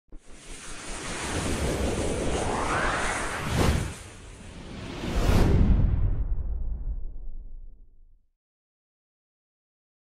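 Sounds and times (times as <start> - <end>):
rushing whoosh: 0.2 - 7.4.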